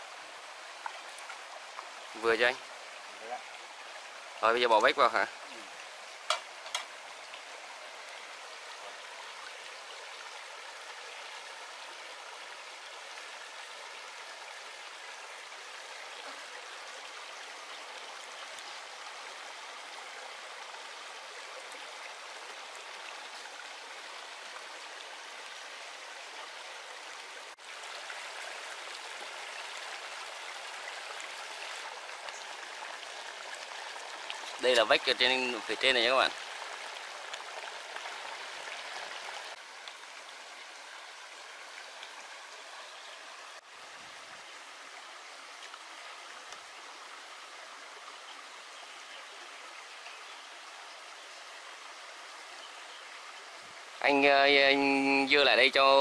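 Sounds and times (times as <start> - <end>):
stream rushing over rocks: 0.0 - 56.0.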